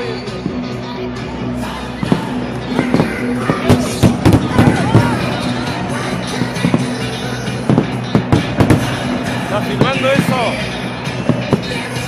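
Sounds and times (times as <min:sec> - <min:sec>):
crowd singing: 0:00.0 - 0:12.0
fireworks bangs and crackles: 0:02.0 - 0:12.0.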